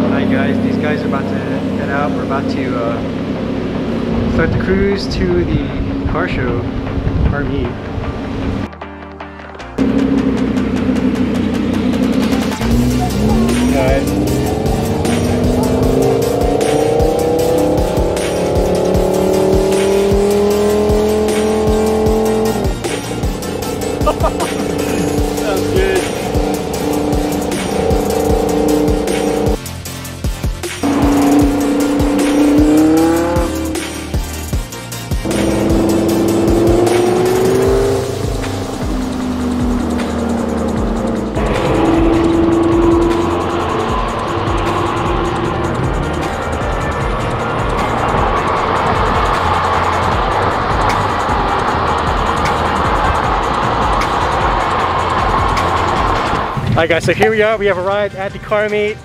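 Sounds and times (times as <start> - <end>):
car engines accelerating: 0.0 - 8.7, 9.6 - 59.0.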